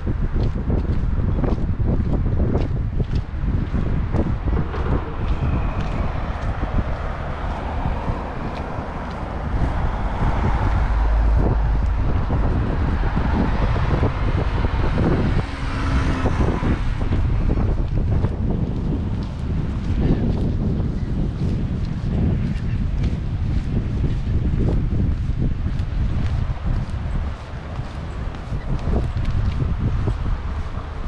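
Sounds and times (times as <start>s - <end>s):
wind buffeting microphone: 0.0s - 31.0s
car passing: 3.3s - 20.4s.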